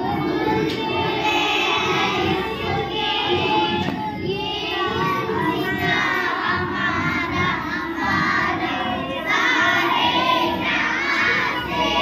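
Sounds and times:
young children singing: 0.0 - 12.0.

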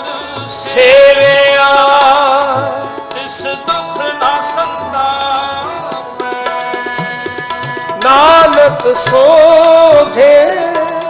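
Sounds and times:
harmonium chords: 0.0 - 11.0
tabla playing: 0.0 - 11.0.

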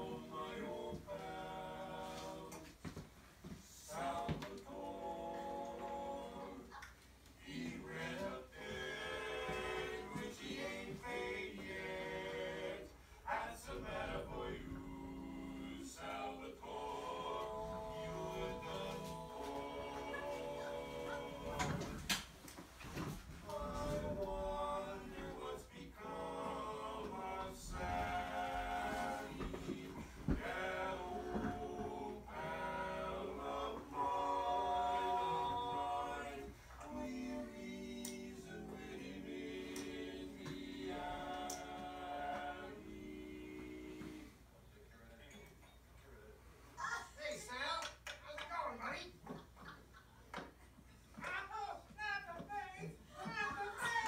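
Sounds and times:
men singing a cappella: 0.0 - 3.0, 3.6 - 6.8, 7.4 - 22.1, 23.0 - 44.5.

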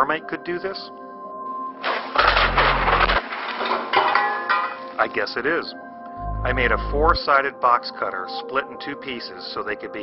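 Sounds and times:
deep rumble: 6.2 - 7.2.

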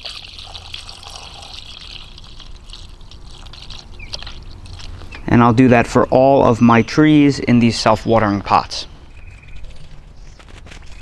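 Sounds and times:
water pouring into water: 0.0 - 5.0.

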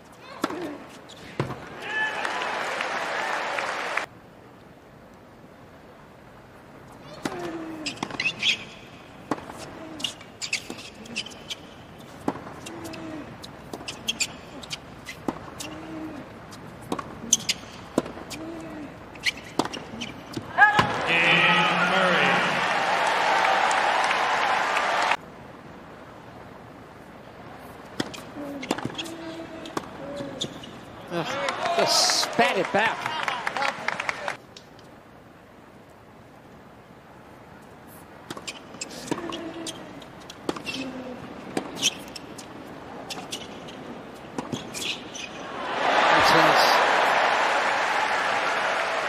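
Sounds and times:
crowd cheering and applause: 1.8 - 4.1, 20.9 - 25.2, 31.2 - 34.4, 45.4 - 49.0.

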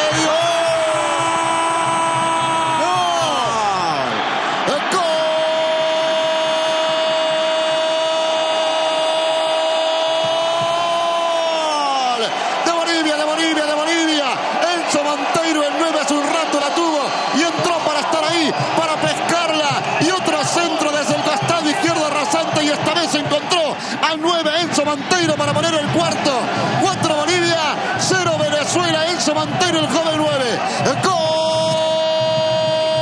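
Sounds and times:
commentator's sustained goal shout: 0.0 - 33.0
loud excited voices: 0.0 - 33.0.

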